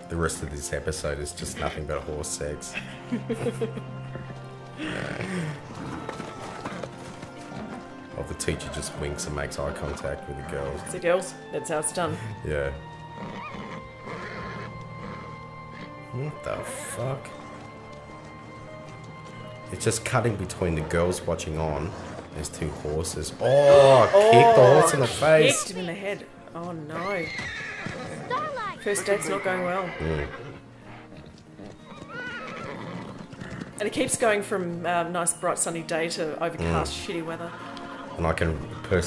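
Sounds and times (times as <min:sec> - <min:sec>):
soundtrack music with held notes: 0:00.0 - 0:39.0
hoofbeats on grass: 0:02.8 - 0:11.0, 0:12.7 - 0:34.8
horse whinnying: 0:04.8 - 0:11.0, 0:12.9 - 0:19.6, 0:20.3 - 0:25.9, 0:26.8 - 0:33.9, 0:36.8 - 0:39.0.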